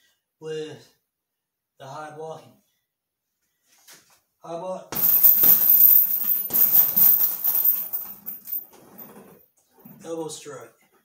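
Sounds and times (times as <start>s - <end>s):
fists striking heavy bag: 5.0s - 7.6s.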